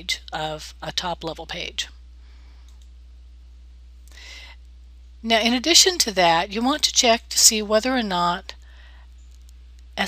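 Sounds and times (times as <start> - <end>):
microphone background hum: 0.0 - 10.0
person speaking: 5.2 - 8.6.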